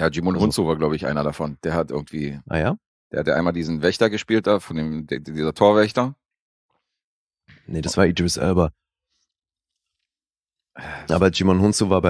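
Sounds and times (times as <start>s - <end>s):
person speaking: 0.0s - 2.8s, 7.5s - 8.7s
faint breath: 10.8s - 11.1s.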